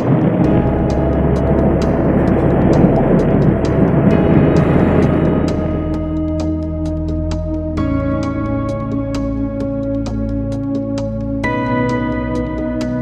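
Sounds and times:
calm ambient music with low drone: 0.0 - 13.0
rumble of vehicle noise: 0.0 - 13.0.

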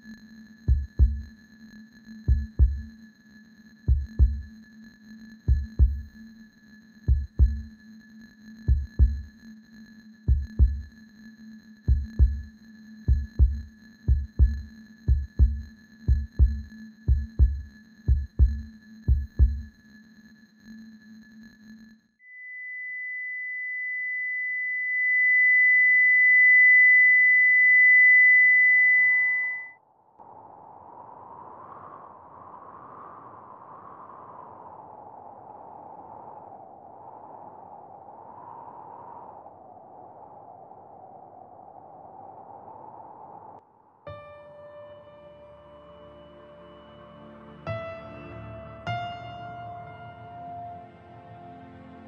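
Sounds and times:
heartbeat-like thumps: 0.7 - 1.3, 2.3 - 2.9, 3.9 - 4.5, 5.5 - 6.1, 7.1 - 7.7, 8.7 - 9.3, 10.3 - 10.9, 11.9 - 12.5, 13.1 - 19.7
monitor flatline beep: 22.3 - 29.8.

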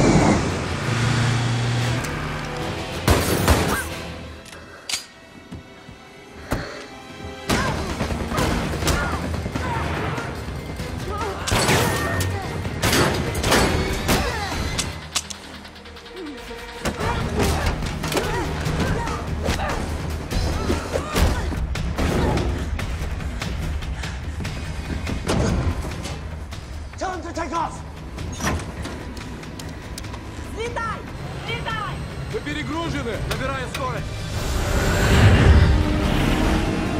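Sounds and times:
cargo plane engines rumbling: 0.0 - 3.0, 28.0 - 36.9
action music score: 0.0 - 36.9.

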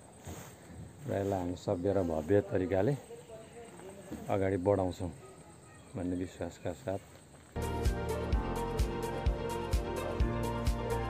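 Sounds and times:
man talking: 1.0 - 5.3, 5.9 - 7.1.

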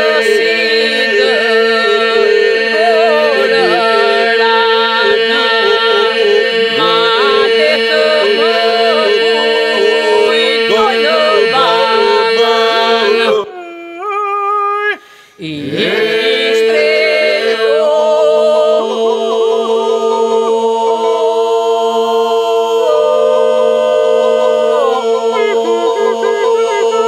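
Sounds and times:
group singing a drone: 0.0 - 13.5, 15.4 - 27.0
lead voices singing melody: 0.0 - 27.0.

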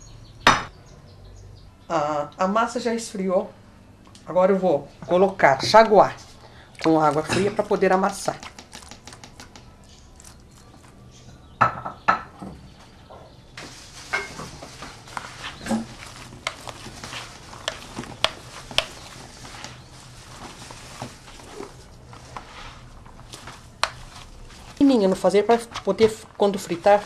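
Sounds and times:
sharp knocks: 0.5 - 0.7
hands kneading crumbly dough: 5.6 - 11.0, 13.6 - 27.0.

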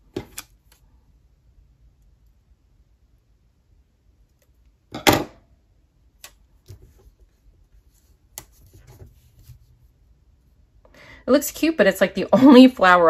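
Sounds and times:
soft paper rustling: 6.2 - 10.0.

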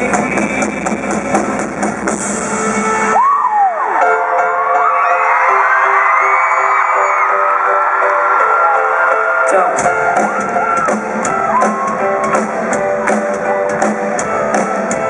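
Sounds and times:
bass and drums: 0.0 - 4.0, 9.8 - 15.0
crowd screaming and cheering: 2.3 - 15.0.

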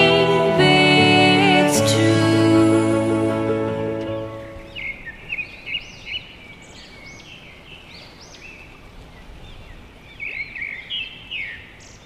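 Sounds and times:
background music: 0.0 - 4.9
faint outdoor background noise: 0.0 - 12.0.

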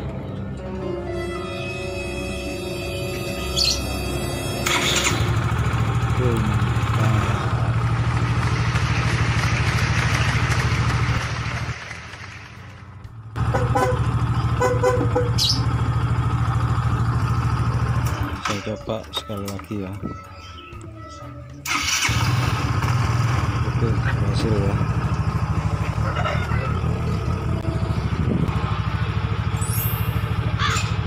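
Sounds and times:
background music: 0.0 - 5.3
scooter engine starting and idling: 4.5 - 19.9, 21.6 - 31.0.

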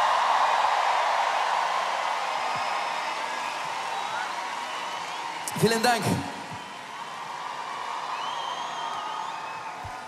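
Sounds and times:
crowd cheering and applauding: 0.0 - 10.0.

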